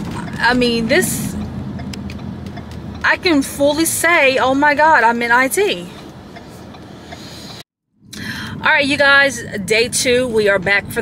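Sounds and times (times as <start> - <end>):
car cabin rumble and hiss: 0.0 - 11.0.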